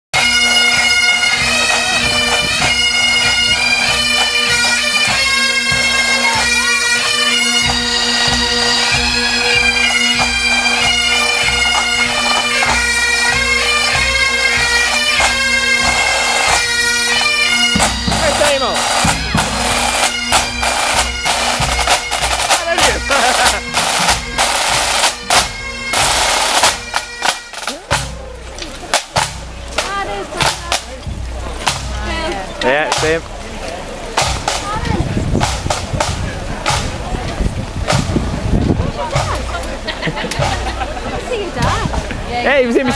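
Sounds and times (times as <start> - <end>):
bagpipes playing a tune: 0.2 - 42.9
marching snare and tenor drums: 0.2 - 42.9.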